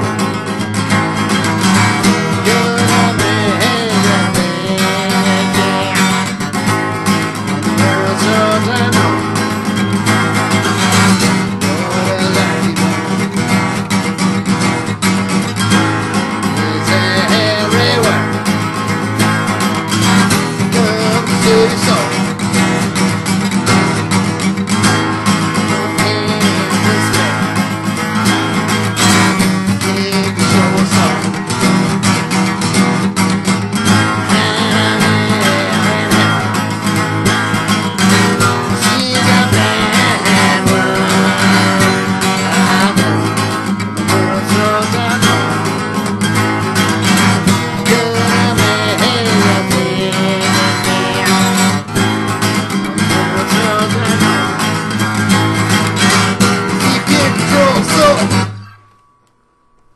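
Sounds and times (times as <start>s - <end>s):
acoustic guitar: 0.0s - 59.9s.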